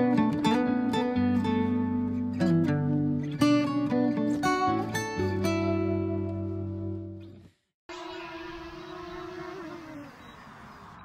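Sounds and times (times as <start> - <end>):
drone propellers buzzing: 7.9 - 11.0.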